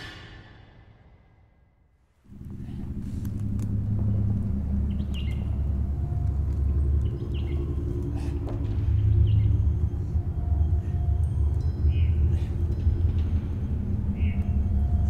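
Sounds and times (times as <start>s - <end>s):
low rumbling drone: 0.0s - 15.0s
bird chirps: 4.6s - 6.3s, 6.9s - 15.0s.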